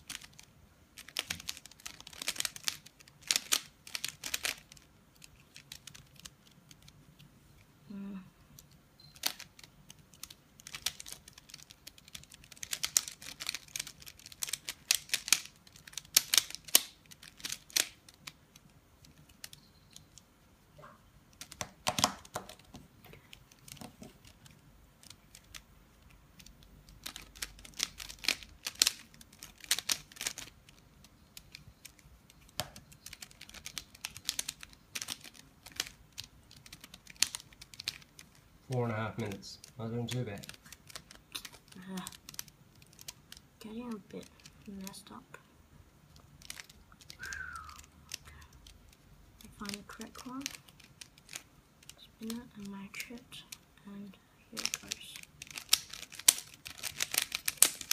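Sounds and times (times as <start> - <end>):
puzzle cube layers clicking: 0.0 - 20.3, 21.3 - 45.2, 46.1 - 53.7, 54.5 - 57.9.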